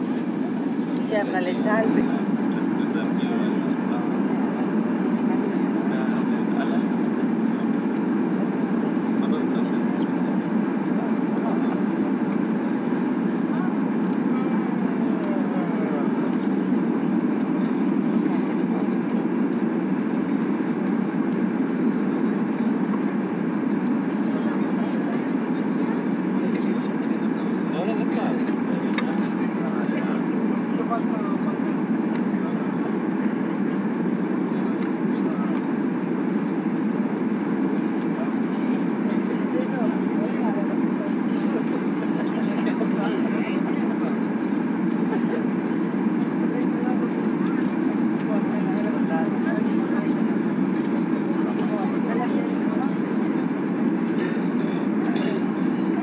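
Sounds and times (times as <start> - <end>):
airplane cabin engine rumble: 0.0 - 56.0.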